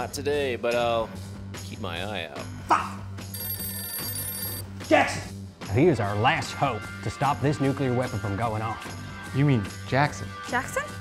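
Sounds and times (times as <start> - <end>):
background music: 0.0 - 11.0
electronic telephone ring: 3.3 - 4.7.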